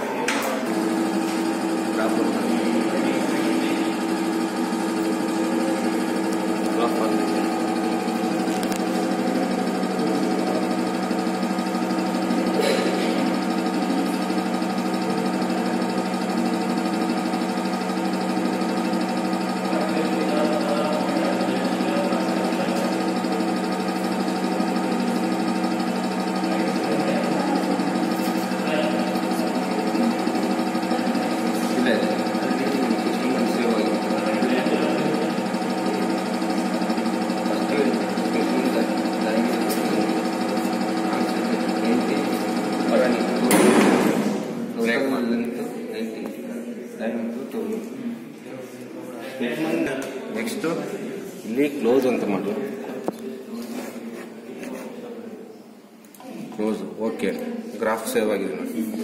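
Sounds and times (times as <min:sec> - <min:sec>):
hydraulic pump humming: 0:00.0 - 0:45.6.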